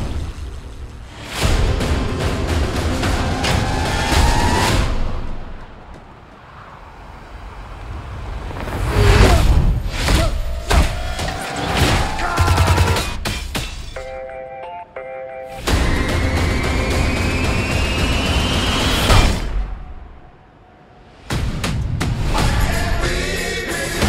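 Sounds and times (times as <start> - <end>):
action trailer score: 0.0 - 14.1, 15.6 - 24.0
sharp crashing hits: 15.6 - 20.3.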